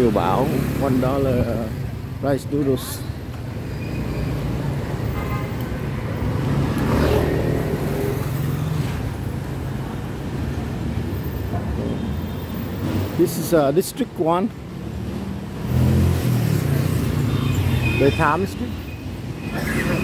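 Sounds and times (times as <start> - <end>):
motorbike engines rumbling: 0.0 - 20.0.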